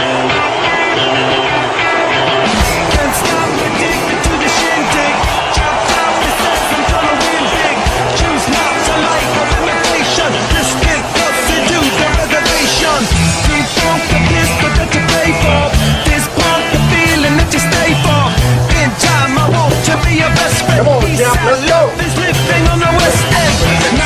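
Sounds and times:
loud rock music: 0.0 - 24.0
fireworks bangs and crackling: 2.5 - 15.7.

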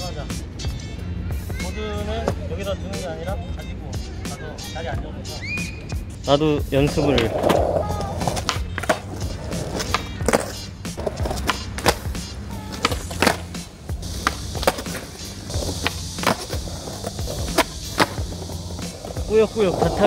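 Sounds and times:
background music: 0.0 - 20.0
skateboard wheels rolling: 6.7 - 20.0
skateboard clacking on stone: 7.0 - 20.0.

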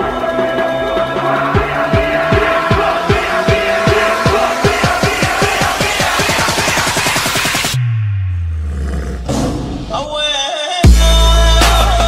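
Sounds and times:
processed vocal sample: 0.0 - 7.1
trap beat: 0.0 - 8.6, 9.8 - 12.0
deep bass note sliding down: 7.8 - 10.1.

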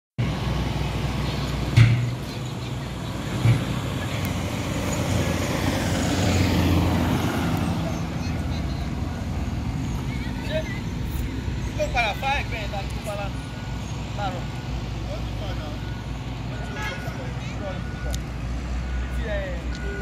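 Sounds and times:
car engine hum and road rumble: 0.2 - 20.0
sharp knocks: 1.8 - 2.2.

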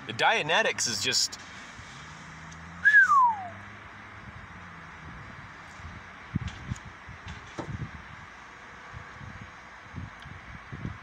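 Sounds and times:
whistle-like call: 2.8 - 3.6.

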